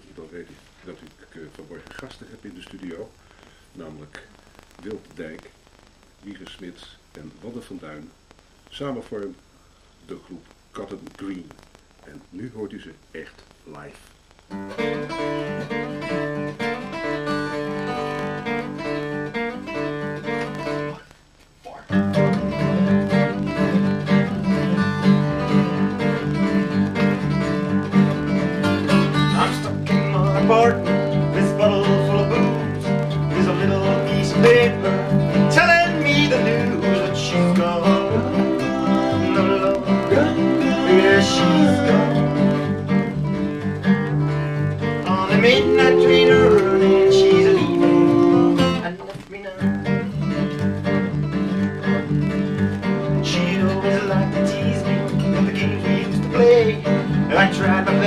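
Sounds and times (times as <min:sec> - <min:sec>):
acoustic guitar playing: 0:14.5 - 0:21.1, 0:21.9 - 0:58.0
double bass playing: 0:22.2 - 0:48.9.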